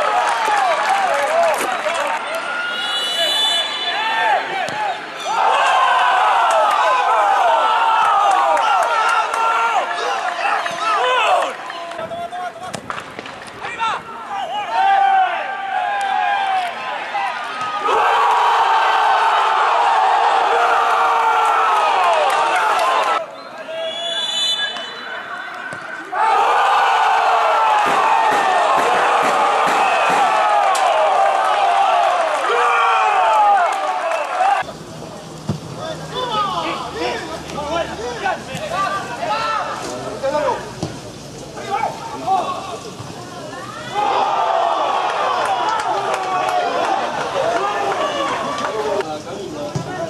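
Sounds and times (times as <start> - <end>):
crowd noise: 0.0 - 50.0
voices shouting: 41.6 - 49.0.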